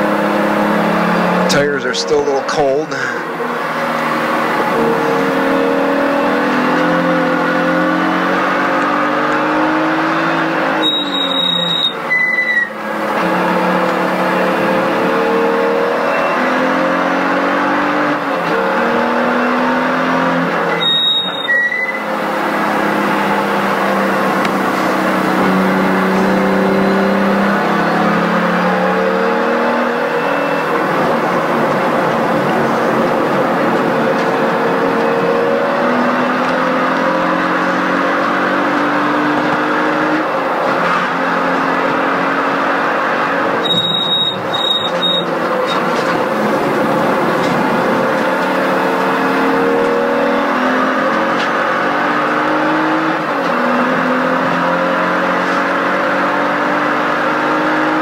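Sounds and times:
car engine revving through gears: 0:00.0 - 0:58.0.

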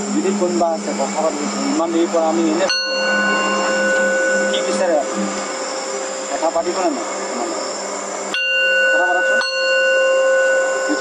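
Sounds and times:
singing bowl ringing: 0:00.0 - 0:11.0.

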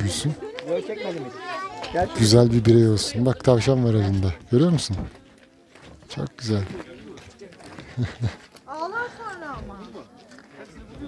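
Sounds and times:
people talking: 0:06.1 - 0:11.0.

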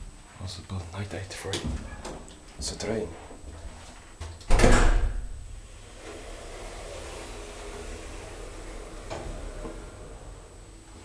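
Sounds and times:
steady low hum: 0:00.0 - 0:11.0
elevator door shutting thud: 0:04.5 - 0:10.5.

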